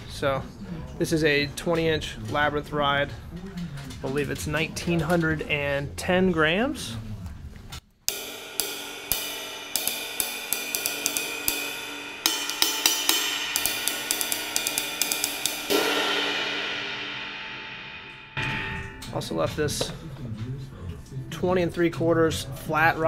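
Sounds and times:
ride cymbal strokes: 0:08.1 - 0:19.4.

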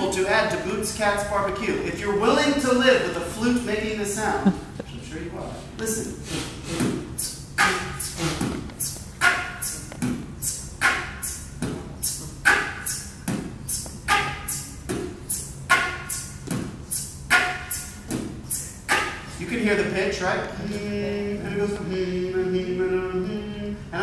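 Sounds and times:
flute beatboxing: 0:05.8 - 0:20.0.

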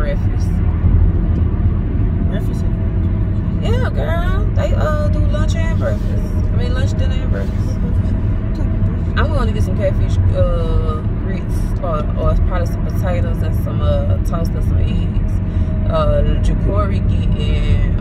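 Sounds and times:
woman speaking: 0:00.0 - 0:00.6, 0:03.6 - 0:08.1, 0:09.0 - 0:18.0
car engine and road rumble: 0:00.0 - 0:18.0.

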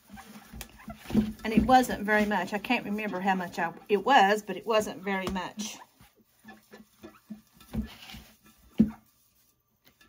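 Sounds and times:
paper towel rubbing glass: 0:00.0 - 0:09.6.

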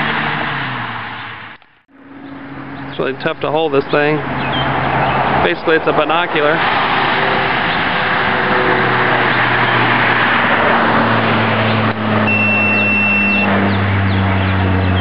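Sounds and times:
truck driving by: 0:00.0 - 0:15.0
thin high beep: 0:12.3 - 0:13.5.

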